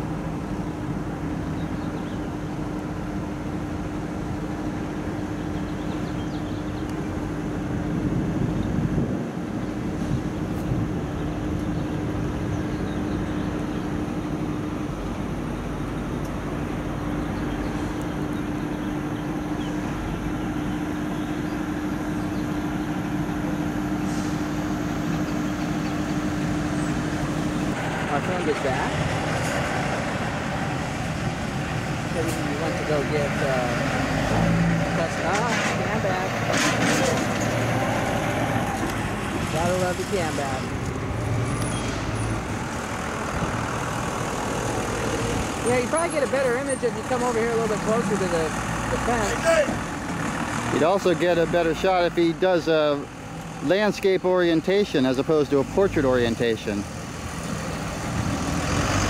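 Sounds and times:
truck noise steady hum: 0:00.0 - 0:59.0.

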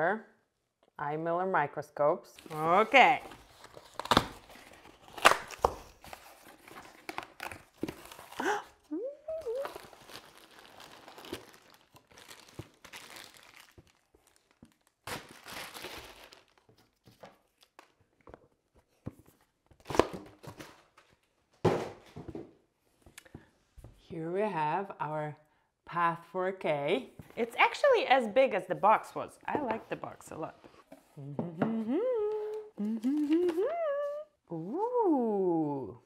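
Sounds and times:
plastic wrap crinkling: 0:02.5 - 0:18.0
tape ripping: 0:03.3 - 0:08.6, 0:09.4 - 0:16.7.

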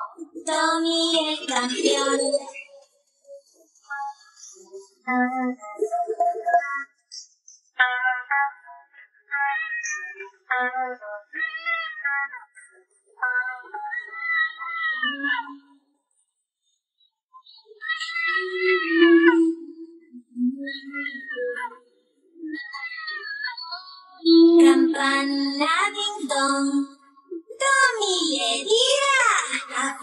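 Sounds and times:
child singing a cappella: 0:00.0 - 0:02.8, 0:03.9 - 0:06.9, 0:07.8 - 0:11.3, 0:13.2 - 0:14.1, 0:15.0 - 0:15.7, 0:18.1 - 0:21.8, 0:22.4 - 0:30.0
cat meowing: 0:09.5 - 0:10.2, 0:11.4 - 0:12.2, 0:13.3 - 0:15.6, 0:17.7 - 0:19.4, 0:20.7 - 0:21.8, 0:22.6 - 0:23.6.

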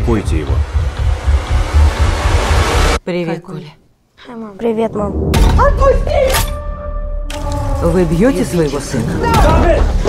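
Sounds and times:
deep throbbing bass: 0:00.0 - 0:03.0.

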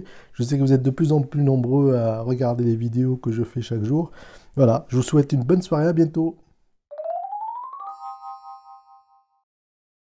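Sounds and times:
electronic bell-like chime: 0:07.0 - 0:09.4.

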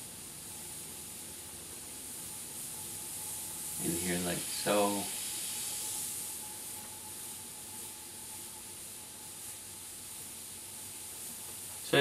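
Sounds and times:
airbrush hissing: 0:00.0 - 0:12.0.

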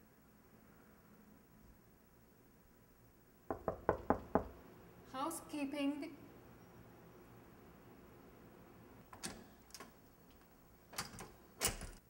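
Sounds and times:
knocking on a door: 0:03.5 - 0:04.6.

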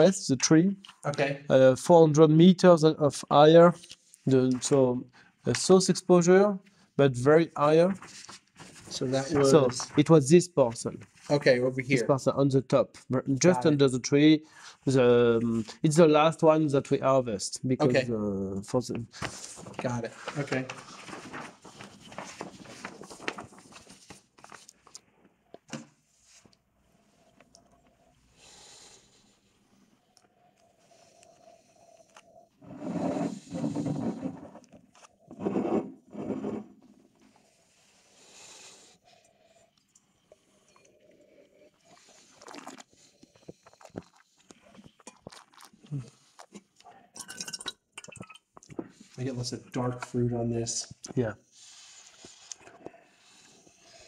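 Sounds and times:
slurping and swishing wine: 0:29.6 - 0:38.0, 0:39.9 - 0:49.4.

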